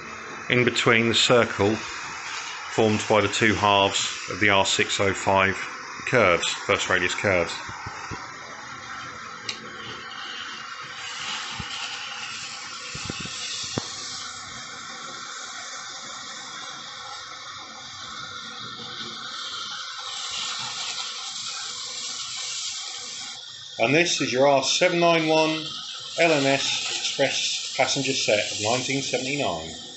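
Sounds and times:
model train motor whirring: 6.1 - 29.9.

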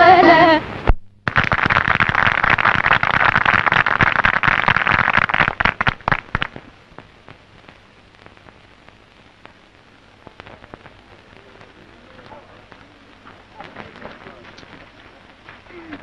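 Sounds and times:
audience applauding: 1.3 - 6.6.

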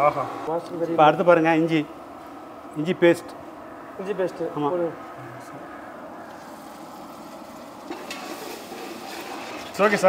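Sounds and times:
forced-draft fire roaring: 0.0 - 10.0.

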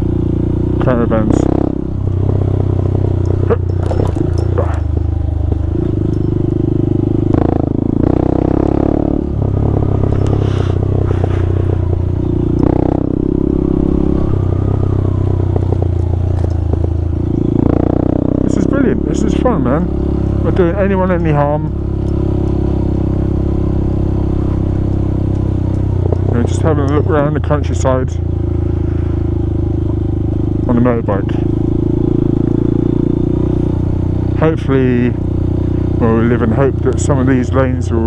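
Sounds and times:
motorcycle engine running: 0.0 - 38.0
bike knocks and rattles: 2.1 - 8.6, 15.5 - 17.8, 24.0 - 27.3.

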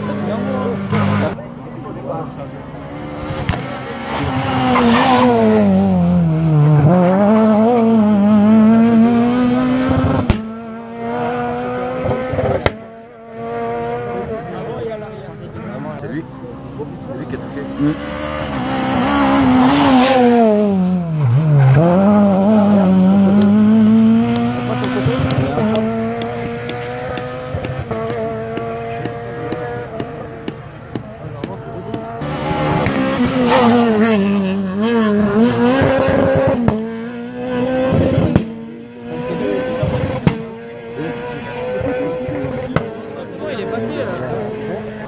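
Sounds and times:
rally car engine revving: 0.0 - 45.0.

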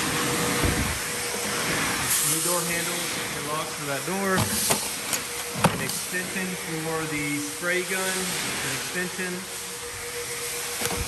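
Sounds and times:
motor-driven machine rushing: 0.0 - 11.0.

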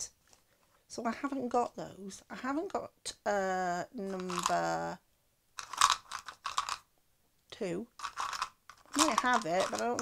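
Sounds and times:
plastic bottle crackling rustles: 4.1 - 4.6, 5.6 - 6.8, 8.0 - 10.0.

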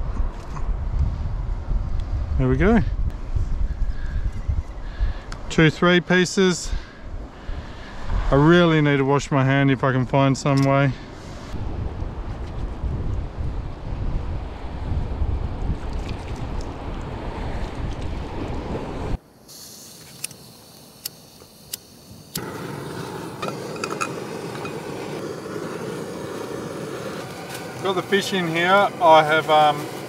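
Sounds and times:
wind buffeting microphone: 0.0 - 5.5, 11.3 - 19.2
gas stove burner hissing: 19.3 - 30.0
sharp clicks: 20.0 - 22.5
sea surf: 22.5 - 30.0.

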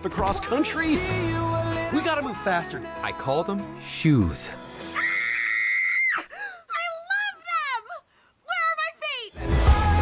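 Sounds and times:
girl screaming: 5.0 - 7.9.

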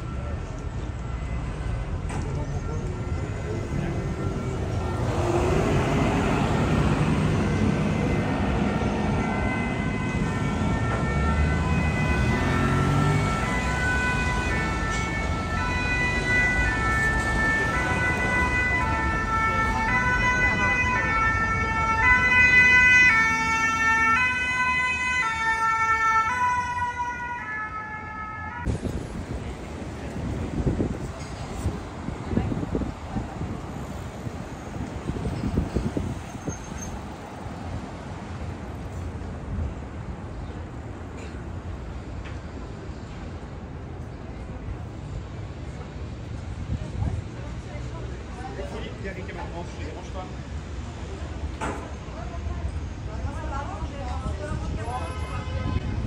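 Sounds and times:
two-tone emergency siren: 0.0 - 28.8
street traffic rumble: 0.0 - 56.0.

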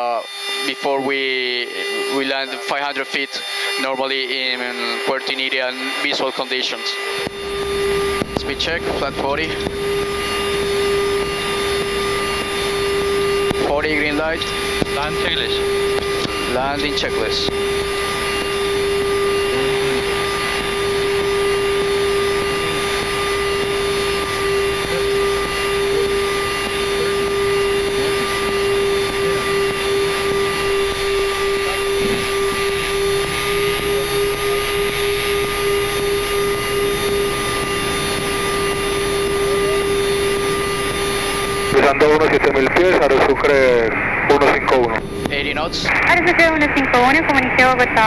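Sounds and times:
constant electrical hum: 0.0 - 48.0.

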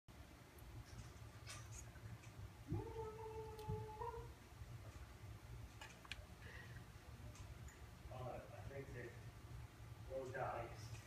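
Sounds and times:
faint clicks: 5.7 - 6.3.

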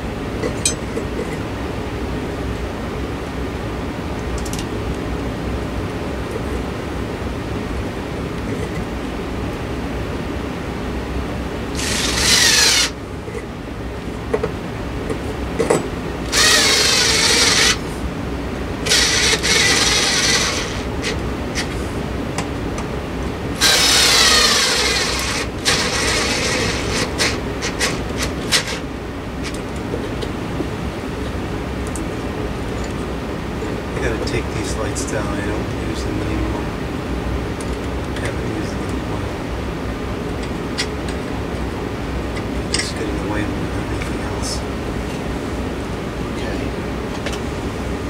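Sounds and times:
power screwdriver whirring: 11.8 - 13.0, 16.3 - 17.8, 18.8 - 21.7, 23.6 - 28.8.

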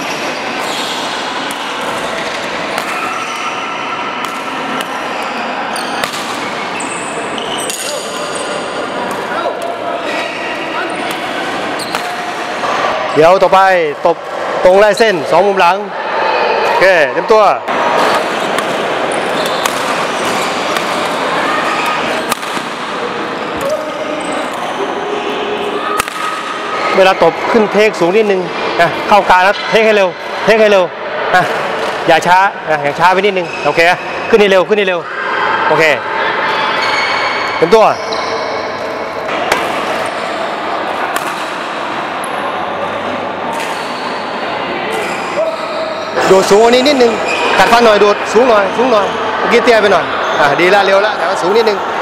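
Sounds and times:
reverberant wash of players: 0.0 - 33.0
racket hitting shuttlecock: 1.4 - 3.6, 4.2 - 9.7, 11.0 - 12.5, 18.0 - 23.8, 25.8 - 26.6, 39.2 - 40.2, 40.9 - 41.9.

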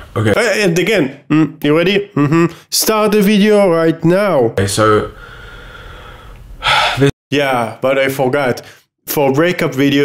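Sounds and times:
person gasping: 2.3 - 2.7, 5.2 - 7.1.

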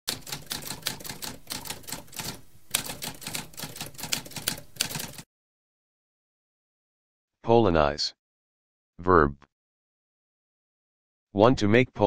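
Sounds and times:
typewriter keystrokes: 0.1 - 5.2.

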